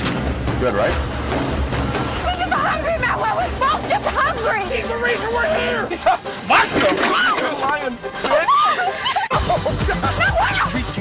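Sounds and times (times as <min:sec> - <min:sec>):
people's voices overlapping: 0:02.1 - 0:11.0.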